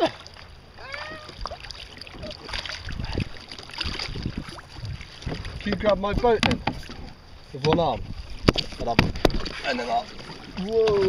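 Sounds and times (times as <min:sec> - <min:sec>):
water lapping against kayak: 0:00.0 - 0:11.0
wind buffeting microphone: 0:02.2 - 0:11.0.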